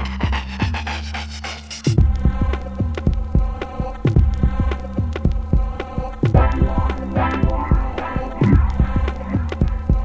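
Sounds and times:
electronic music with drum beat: 0.0s - 10.0s.

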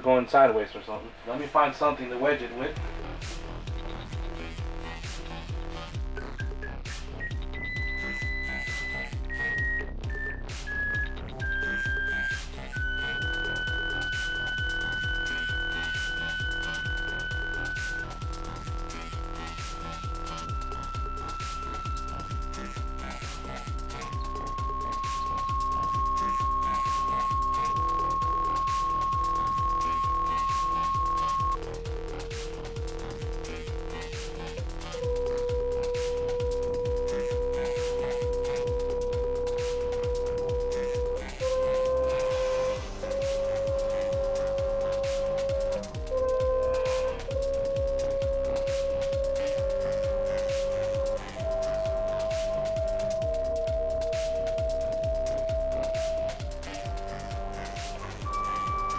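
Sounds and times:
stepping sine tones: 0.0s - 58.9s
electronic music with steady beat: 1.1s - 58.9s.

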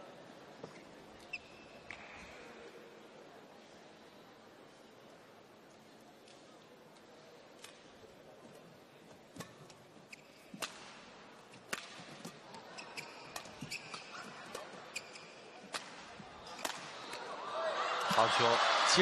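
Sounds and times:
shoes squeaking on court: 0.7s - 2.1s, 9.1s - 17.1s
racket striking shuttlecock: 10.1s - 12.4s, 13.0s - 17.2s
crowd noise: 10.8s - 19.0s.

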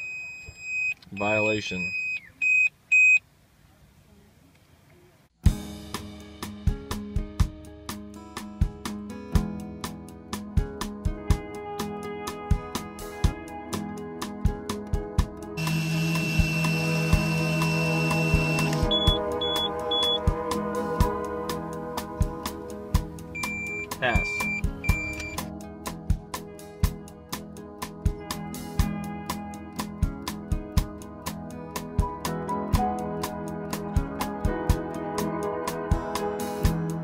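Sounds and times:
music with steady beat: 5.4s - 37.0s
high electronic beep: 15.6s - 20.2s, 23.4s - 25.5s
steady high tone: 15.6s - 20.3s, 23.3s - 25.4s.

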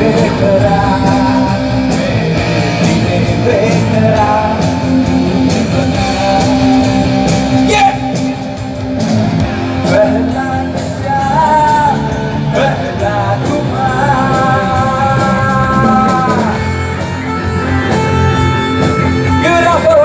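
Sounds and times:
man singing into a microphone: 0.0s - 8.5s, 9.8s - 17.4s, 19.2s - 20.0s
live rock band playing: 0.0s - 20.0s.

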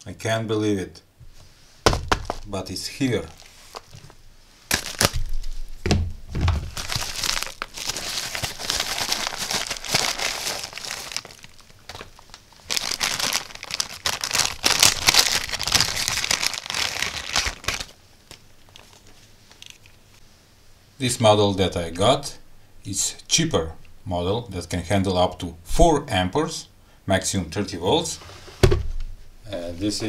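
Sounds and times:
plastic packaging crinkling and tearing: 3.3s - 5.8s, 6.4s - 20.0s.

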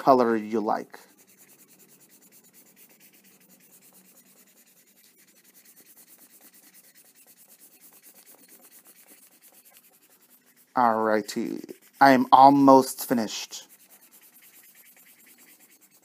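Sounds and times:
marker scratching on paper: 0.0s - 16.0s.

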